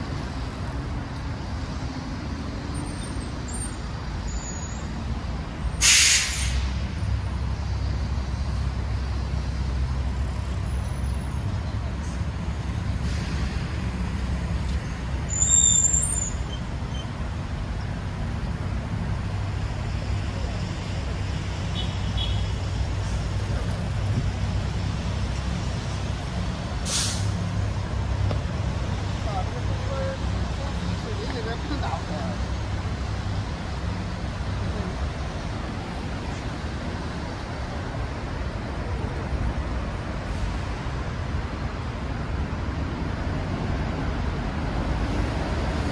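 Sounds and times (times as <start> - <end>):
road traffic rumble: 0.0 - 45.9.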